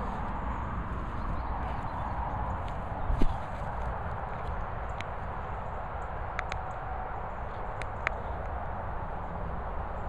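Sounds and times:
steady low rumble: 0.0s - 10.0s
footsteps on grass: 2.7s - 4.0s.

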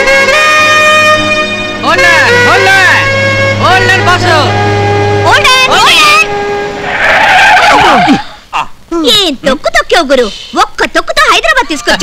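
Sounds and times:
tyres skidding screech: 1.6s - 8.5s
people crying out: 6.9s - 8.4s.

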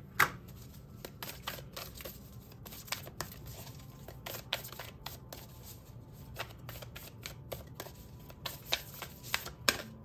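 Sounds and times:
cards being shuffled: 0.2s - 10.0s.

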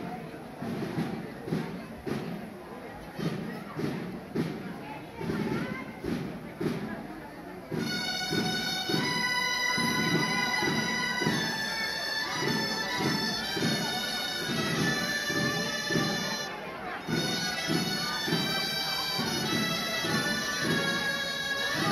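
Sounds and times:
crowd chatter: 0.0s - 21.9s
shrill shawm playing held notes: 7.7s - 21.9s.

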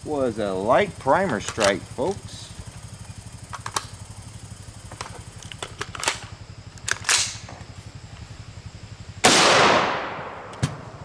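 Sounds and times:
rifle action clicking: 6.8s - 7.4s
loud rifle shot: 9.2s - 11.0s.

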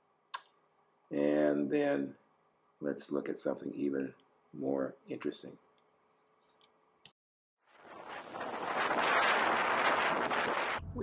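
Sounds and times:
strong wind buffeting microphone: 7.8s - 11.0s
breaking sea rushing: 7.9s - 11.0s.

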